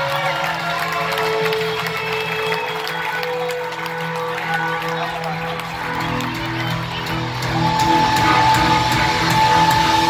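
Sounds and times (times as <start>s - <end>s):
rock band playing live: 4.8s - 10.0s.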